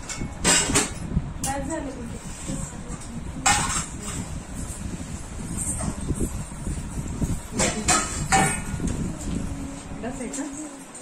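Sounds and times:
steady low rumble: 0.0s - 10.6s.

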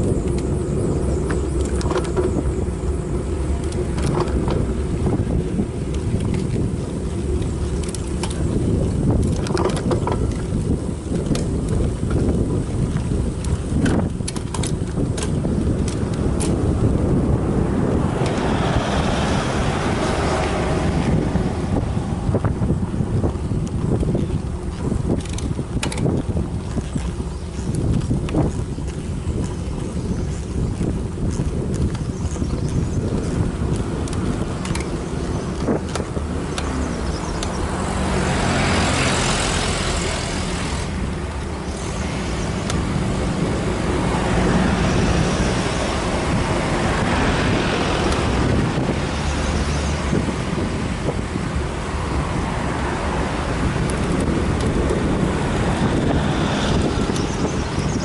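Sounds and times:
steady low rumble: 0.0s - 58.0s
vehicles passing on road: 0.0s - 58.0s
wind buffeting microphone: 0.0s - 58.0s.

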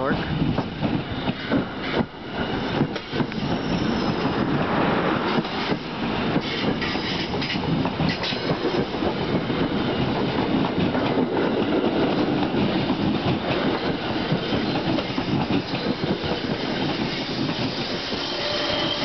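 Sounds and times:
train coaches rail rumble: 0.0s - 19.0s
train wheel clicks: 0.5s - 4.4s, 5.3s - 19.0s.

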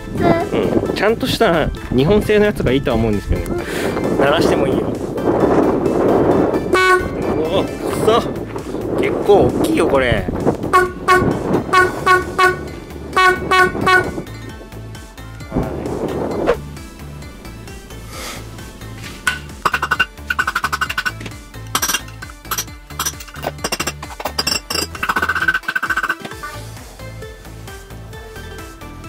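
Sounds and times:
background music: 0.0s - 29.0s
electric horn toots: 6.7s - 7.2s, 10.7s - 14.2s
hammer tapping metal horn: 19.3s - 21.2s.

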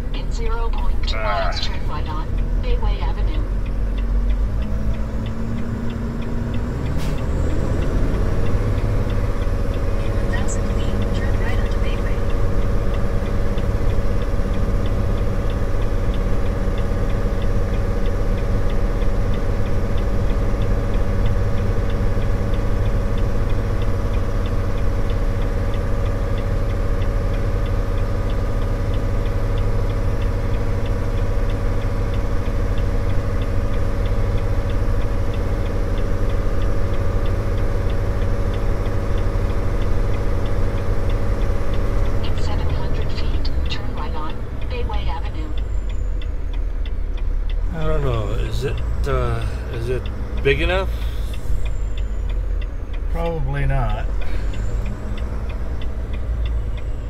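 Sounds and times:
faint regular ticking: 0.0s - 57.0s
truck diesel engine from cab: 0.0s - 57.0s.

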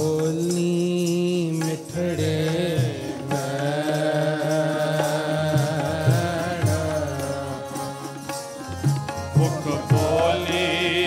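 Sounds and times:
tabla: 0.0s - 11.0s
harmonium held notes: 1.5s - 11.0s.

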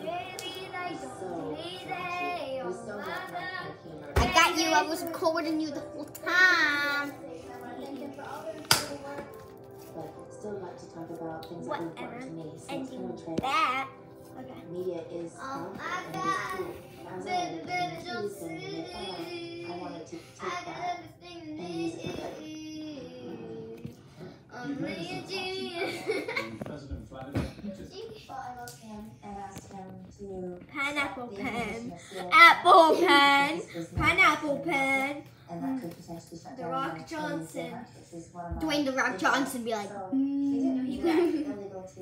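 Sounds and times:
child singing: 0.0s - 9.2s.

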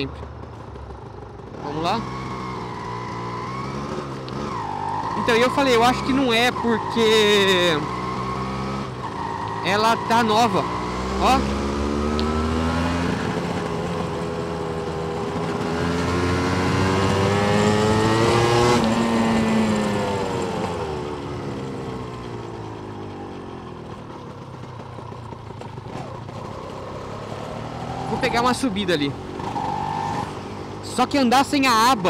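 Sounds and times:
motorcycle engine revving: 0.0s - 32.0s.

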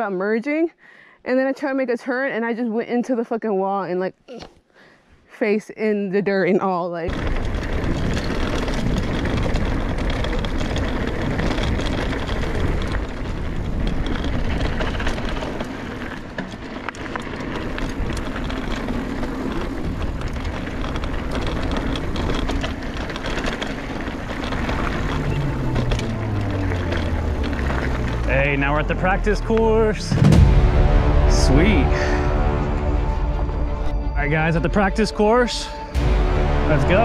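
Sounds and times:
bike rattling and clicking: 7.1s - 30.4s
tyres crunching over dirt: 7.1s - 32.7s
low hum falling in pitch: 30.0s - 37.0s.

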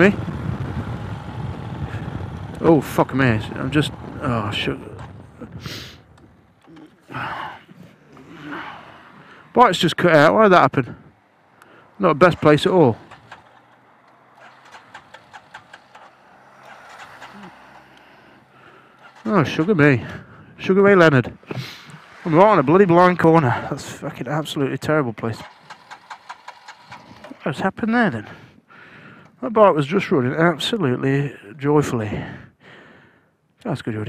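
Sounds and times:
wind noise: 0.0s - 6.6s
motorcycle engine rumble: 0.0s - 30.2s
car passing by: 13.1s - 19.3s.

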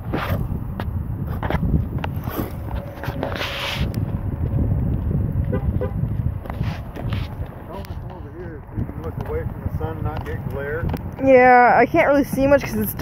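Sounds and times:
tyres on gravel: 0.0s - 13.0s
wind rumble on microphone: 0.0s - 13.0s.

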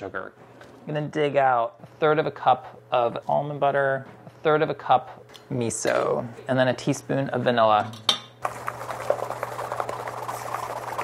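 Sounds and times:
whisk clicking in metal bowl: 8.4s - 11.0s.

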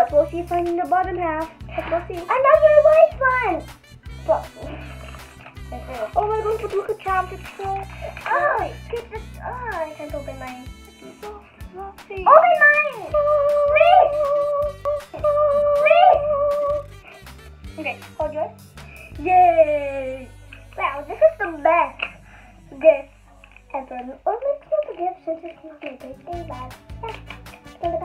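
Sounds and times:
girls chattering: 0.0s - 17.0s, 17.8s - 28.0s
background music: 0.0s - 28.0s.

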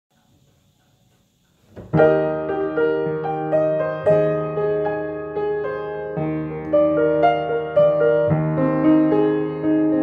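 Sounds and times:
faint high whine: 0.1s - 2.8s
piano chord: 1.8s - 10.0s.

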